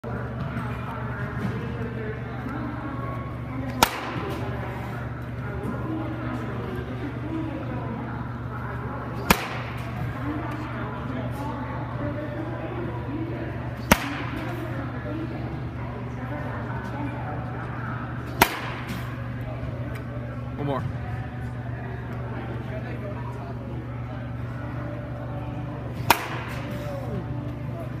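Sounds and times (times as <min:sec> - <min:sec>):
wooden bat cracking a ball: 0:03.7 - 0:04.5, 0:09.2 - 0:10.0, 0:13.8 - 0:14.6, 0:18.3 - 0:19.2, 0:26.0 - 0:26.9.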